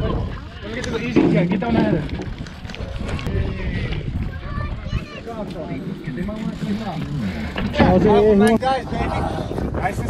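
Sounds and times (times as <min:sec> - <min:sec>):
men talking: 0:00.0 - 0:02.3, 0:05.0 - 0:10.0.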